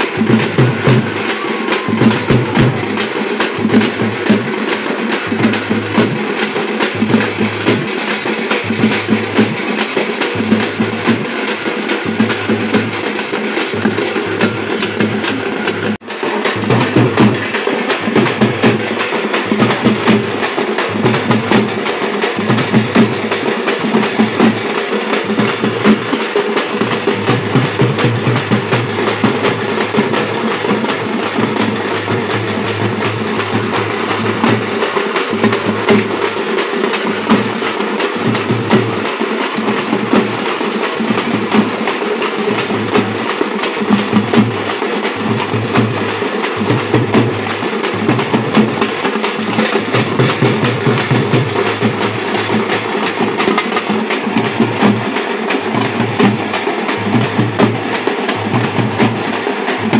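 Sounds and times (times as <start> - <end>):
frame drums beaten with sticks: 0.0 - 59.9.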